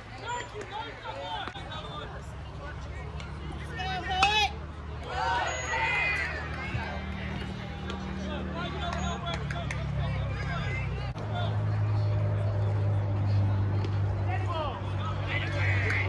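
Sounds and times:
spectators shouting and cheering: 0:03.3 - 0:16.0.

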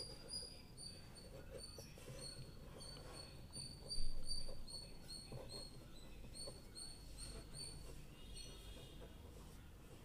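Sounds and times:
pen scratching on paper: 0:00.0 - 0:10.0.

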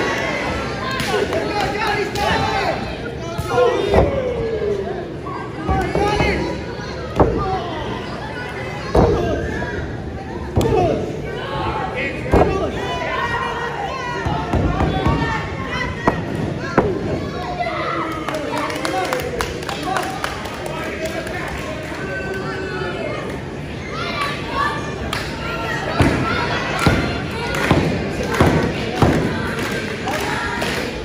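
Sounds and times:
crowd shouting: 0:00.0 - 0:19.1, 0:23.8 - 0:31.0.

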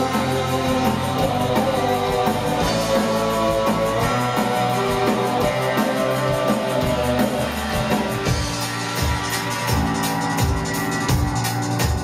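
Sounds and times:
electric guitar: 0:00.0 - 0:12.0
keyboard: 0:00.0 - 0:12.0
steady drum beat: 0:00.0 - 0:12.0.

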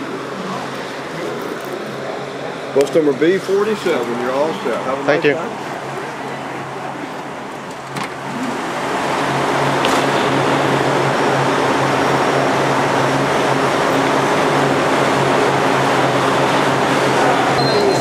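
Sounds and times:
coach engines idling: 0:00.0 - 0:18.0.

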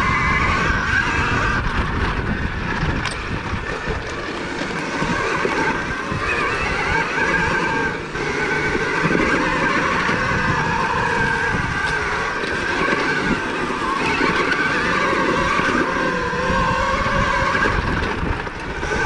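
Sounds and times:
electric motor whining: 0:00.0 - 0:19.0
rattle and tyre noise on dirt: 0:00.0 - 0:19.0.

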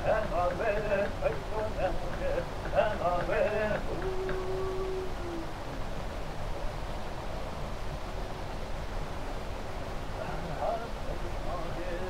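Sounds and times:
recording hiss and rumble: 0:00.0 - 0:12.0.

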